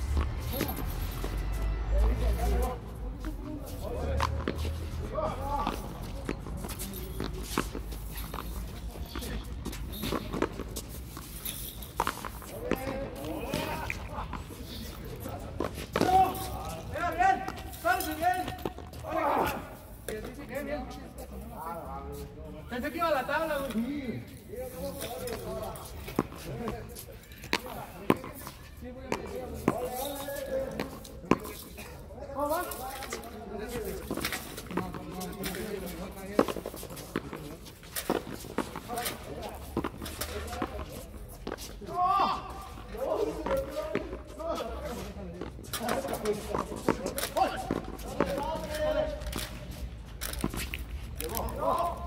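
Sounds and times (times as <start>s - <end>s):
footsteps scuffing on concrete: 0.0s - 21.1s.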